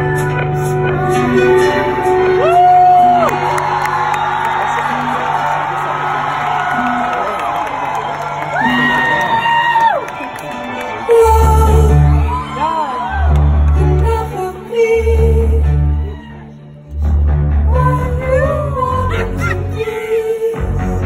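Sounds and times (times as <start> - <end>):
live pop music: 0.0 - 21.0
fans whooping: 2.3 - 11.4
heavy bass: 16.9 - 19.8.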